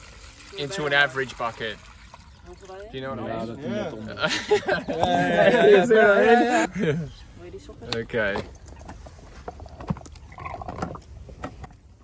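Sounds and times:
small water splashes: 0.0 - 3.0.

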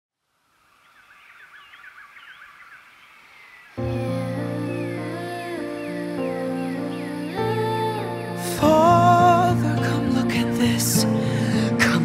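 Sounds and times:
bird chirps: 0.5 - 9.1
music sustained chord: 3.8 - 12.0.

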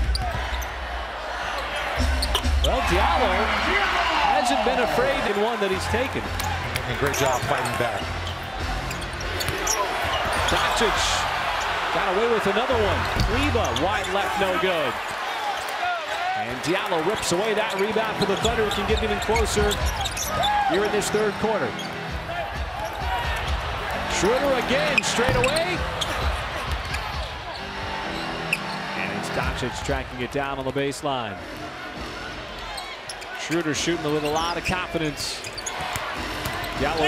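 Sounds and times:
murmur of crowd: 0.0 - 37.0.

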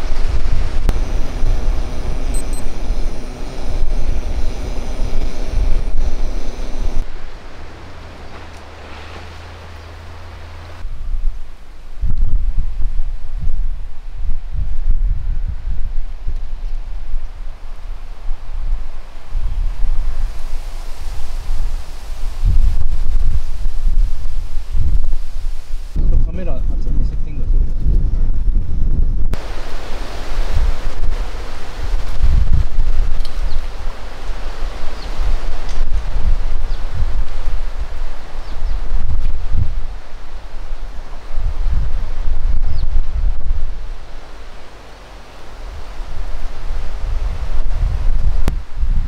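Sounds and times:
gas burner hissing: 0.0 - 7.1
gusty wind buffeting microphone: 0.0 - 49.0.

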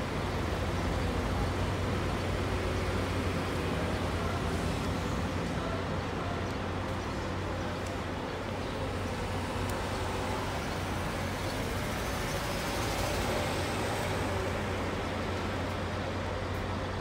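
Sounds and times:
bus diesel engine: 0.0 - 17.0
road noise: 0.0 - 17.0.

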